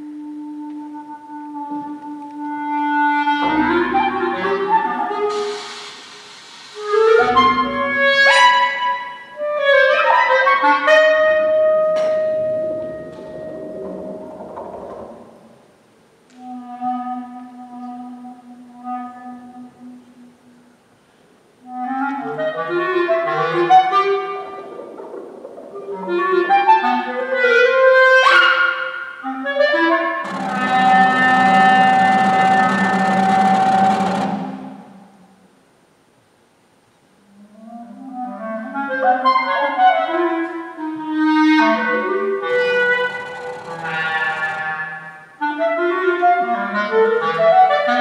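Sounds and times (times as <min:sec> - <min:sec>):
solo clarinet playing: 0:00.0 - 0:05.9, 0:06.8 - 0:14.1, 0:16.3 - 0:20.8, 0:21.6 - 0:24.8, 0:26.0 - 0:35.0, 0:37.2 - 0:48.0
rush of noise: 0:30.2 - 0:35.2.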